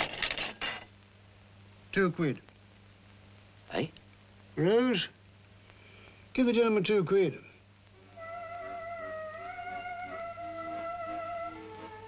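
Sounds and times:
metal jewellery clinking on table: 0.0 - 0.9
faint soundtrack hum: 0.0 - 12.0.

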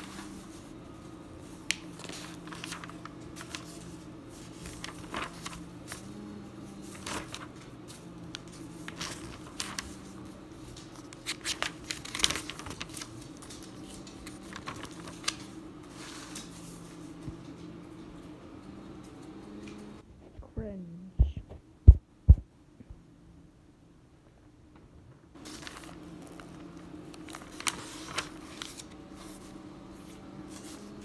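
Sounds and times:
notebook pages clicking: 4.4 - 6.1, 6.8 - 7.6, 8.3 - 15.6, 25.4 - 29.4.

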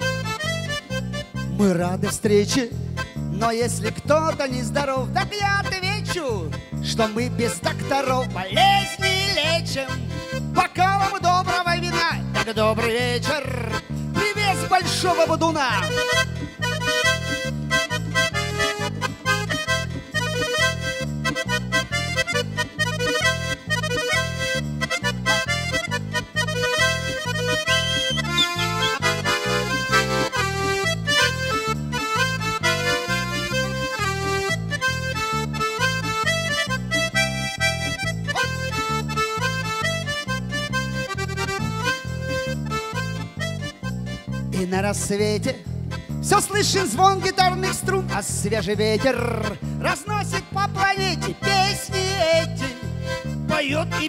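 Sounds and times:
accordion melody: 0.0 - 54.0
steady bass beat: 0.0 - 54.0.

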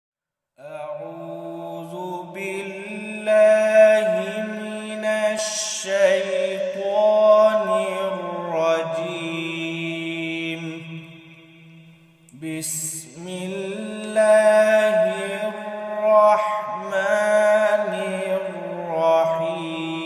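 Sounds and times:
man chanting recitation: 0.6 - 11.2, 12.3 - 20.0.

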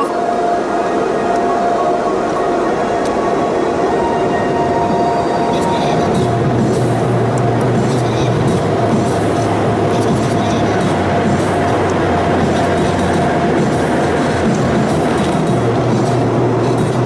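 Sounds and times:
car wash rushing noise: 0.0 - 17.0
dryer blowers humming: 0.0 - 17.0
steady whine: 0.0 - 17.0.

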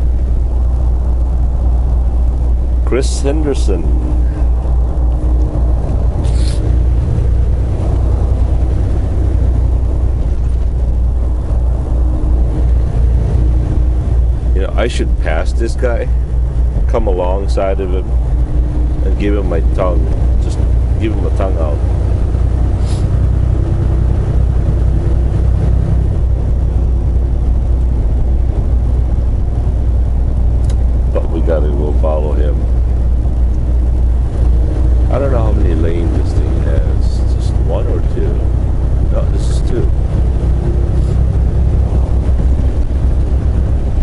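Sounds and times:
diesel engine and road drone: 0.0 - 44.0.

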